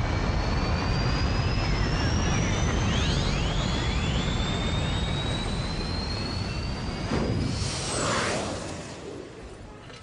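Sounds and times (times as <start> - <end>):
high whine rising in pitch: 0.0 - 9.8
spaceship whoosh: 7.0 - 9.8.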